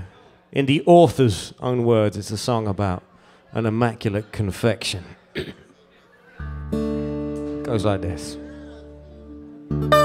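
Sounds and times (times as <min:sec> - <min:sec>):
person clearing throat: 0:05.3 - 0:05.8
lap slide guitar chord ringing: 0:08.4 - 0:10.0.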